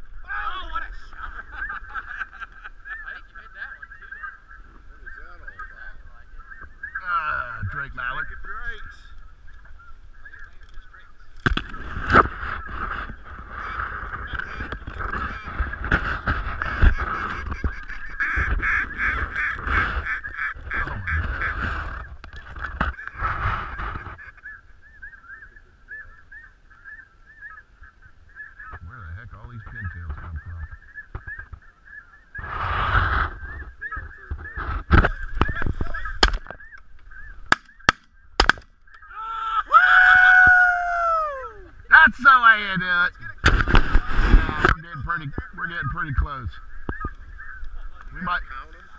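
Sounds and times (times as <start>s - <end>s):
geese honking: 0.3s - 39.3s
sharp cracks: 34.6s - 39.0s, 43.4s - 44.8s.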